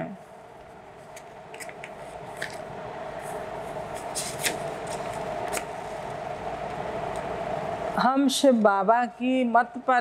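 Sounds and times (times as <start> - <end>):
background hum: 0.0 - 10.0
paper rustling: 3.9 - 5.7.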